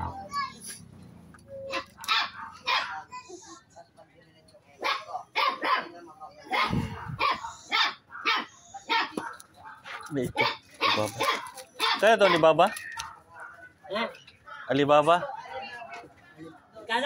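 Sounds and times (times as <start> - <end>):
dog barking: 1.7 - 3.1, 4.8 - 12.5.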